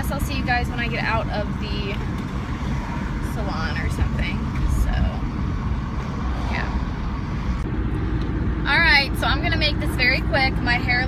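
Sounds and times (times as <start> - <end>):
woman talking: 0.0 - 2.0, 3.2 - 5.3, 8.6 - 11.0
car road and engine noise: 0.0 - 11.0.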